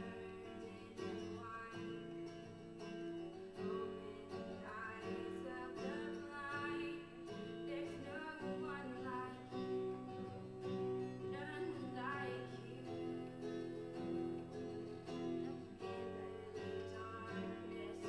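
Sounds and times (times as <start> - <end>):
girl singing gospel song: 0.0 - 2.4, 3.5 - 10.3, 11.0 - 13.5, 15.7 - 18.0
acoustic guitar strumming: 0.0 - 18.0.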